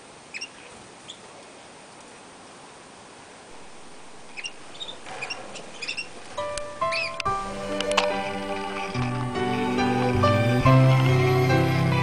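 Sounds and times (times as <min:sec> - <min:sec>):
steady hiss: 0:00.0 - 0:12.0
canaries chirping: 0:00.3 - 0:01.2, 0:03.6 - 0:12.0.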